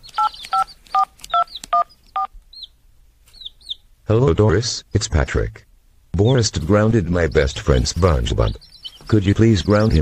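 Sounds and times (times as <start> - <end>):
faint high chirps: 0.0 - 3.9.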